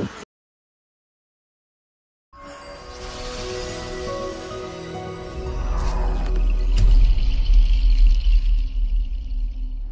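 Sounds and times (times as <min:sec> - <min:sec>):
thin high shimmer: 0:02.4 - 0:07.6.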